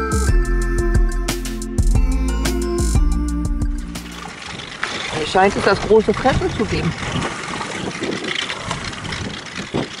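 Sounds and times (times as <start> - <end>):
outboard motor idling: 2.0 - 10.0.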